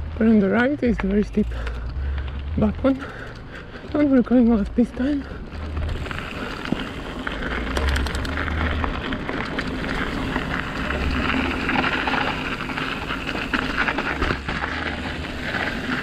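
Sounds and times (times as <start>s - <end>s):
bike clicks and rattles: 0.0s - 16.0s
bike tyre noise on dirt: 0.0s - 16.0s.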